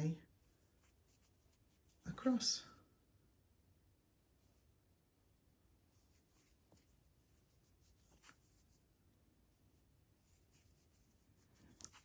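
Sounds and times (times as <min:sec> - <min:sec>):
crochet hook rustling yarn: 0:00.0 - 0:02.8, 0:03.8 - 0:05.0, 0:05.7 - 0:12.0.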